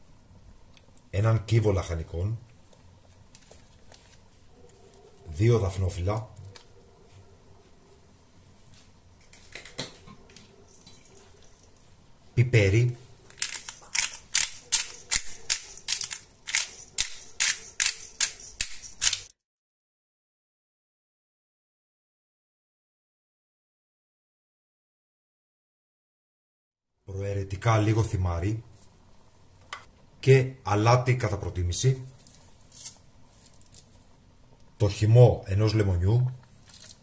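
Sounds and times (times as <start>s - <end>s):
pepper mill grinding peppercorns: 13.3s - 19.4s, 36.6s - 37.0s.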